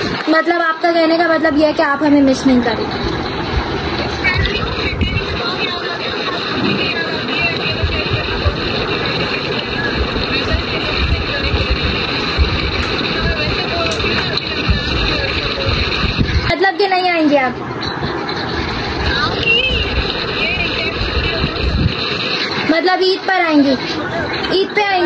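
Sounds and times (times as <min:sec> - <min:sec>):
steady dense noise: 0:00.0 - 0:25.0
speech through phone speaker: 0:04.0 - 0:17.6, 0:19.0 - 0:25.0.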